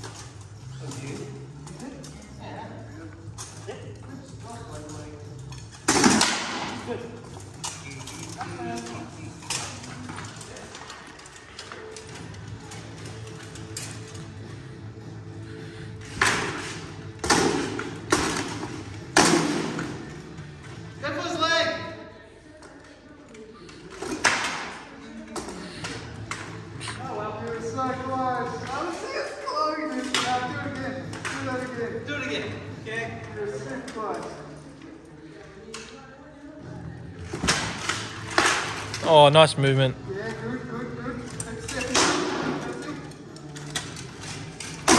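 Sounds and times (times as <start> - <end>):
swords striking shields and armour: 5.9 - 6.7, 19.2 - 19.9.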